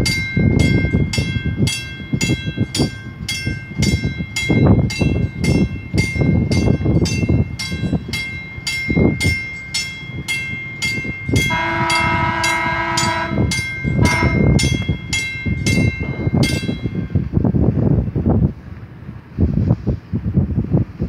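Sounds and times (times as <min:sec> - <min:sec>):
warning bell ringing: 0:00.0 - 0:17.2
horn blast: 0:11.5 - 0:14.6.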